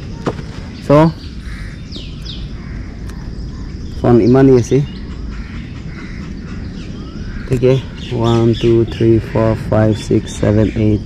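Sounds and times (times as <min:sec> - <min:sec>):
background traffic rumble: 0:00.0 - 0:11.0
bird chirps: 0:00.0 - 0:11.0.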